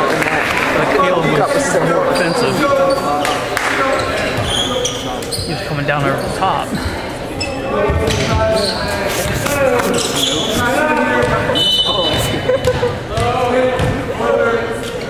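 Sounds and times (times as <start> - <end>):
voices echoing in a gym: 0.0 - 15.0.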